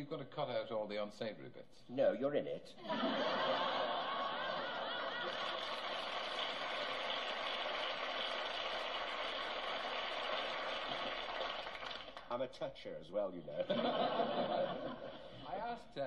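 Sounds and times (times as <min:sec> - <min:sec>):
audience laughing: 0:02.8 - 0:05.8, 0:13.6 - 0:15.4
audience applauding: 0:03.8 - 0:12.3.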